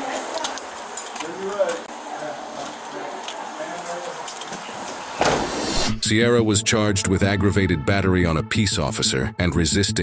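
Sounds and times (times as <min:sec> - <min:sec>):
faint indistinct voices: 0:00.0 - 0:05.2
loud rushing noise: 0:05.2 - 0:06.2.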